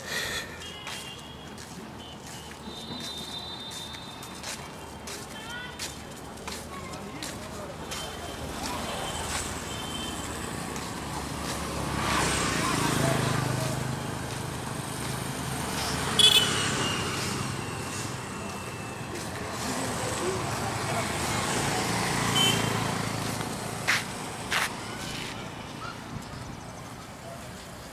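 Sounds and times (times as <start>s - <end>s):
people's voices: 0.0s - 27.9s
road traffic: 0.0s - 27.9s.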